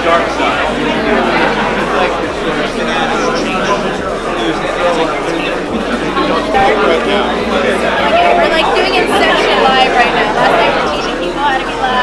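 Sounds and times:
hall babble: 0.0 - 12.0
people talking over one another: 0.0 - 12.0.

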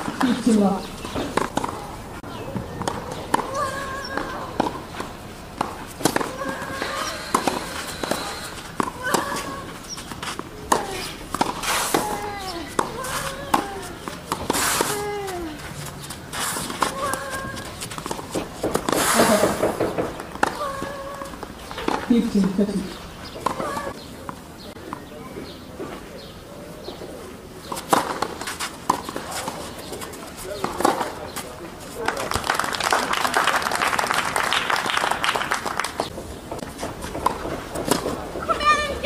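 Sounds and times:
tennis ball hit with racquets: 0.0 - 22.7, 23.3 - 26.0, 27.6 - 32.4, 35.9 - 39.0
voices talking: 0.0 - 34.4, 36.0 - 39.0.

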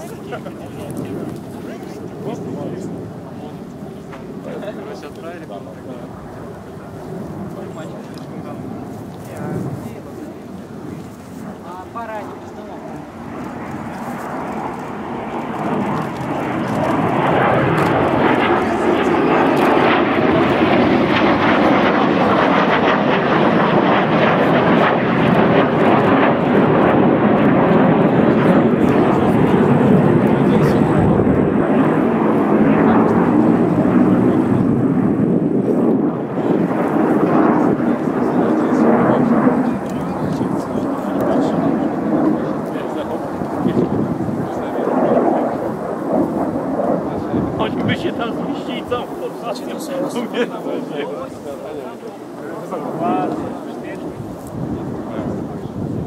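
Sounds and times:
jet engines roaring: 0.0 - 56.0.

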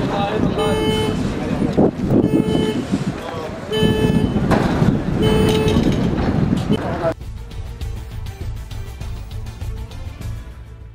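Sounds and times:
street noise: 0.0 - 10.9
vehicle horn blasts: 0.6 - 1.4, 2.1 - 3.0, 3.7 - 4.5, 5.2 - 5.9.

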